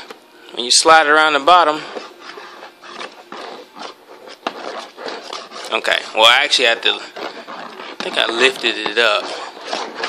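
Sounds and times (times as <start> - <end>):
bulb scraping in plastic bin: 1.1 - 10.0.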